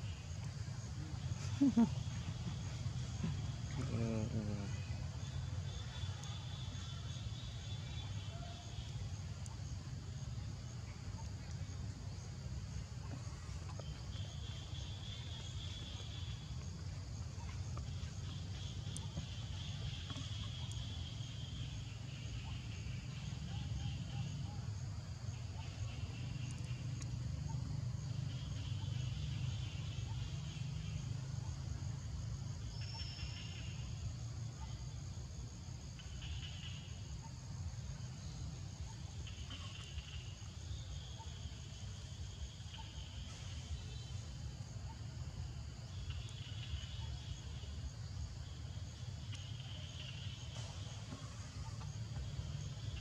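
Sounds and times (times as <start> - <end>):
insect trilling: 0.0 - 34.6
high insect drone: 0.0 - 53.0
low steady rumble: 0.0 - 53.0.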